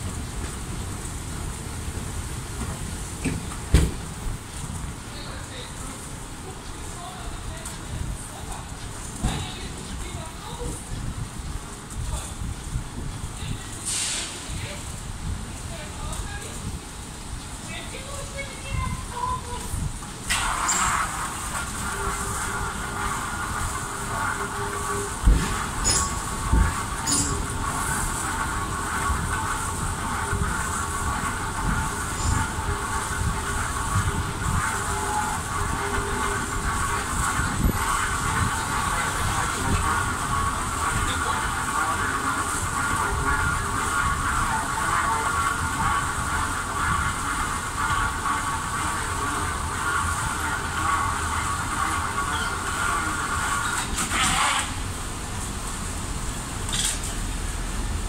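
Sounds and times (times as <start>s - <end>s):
moving walkway rumbling: 0.0s - 58.0s.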